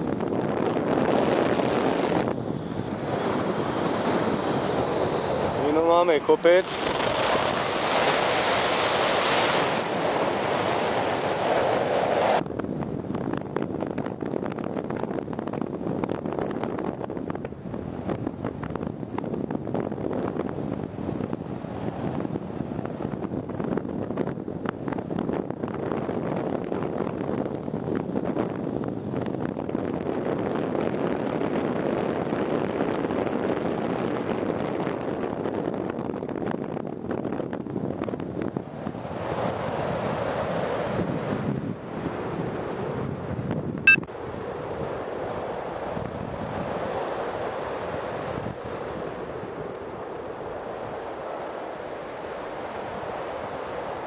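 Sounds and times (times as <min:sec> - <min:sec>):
wind rushing over microphone: 0:00.0 - 0:54.0.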